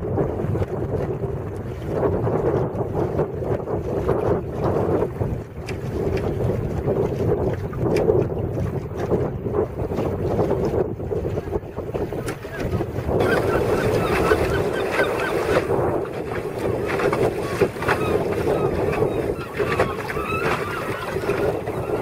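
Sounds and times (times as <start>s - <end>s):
water splashing along a hull: 0.0s - 22.0s
wind buffeting the microphone: 0.0s - 22.0s.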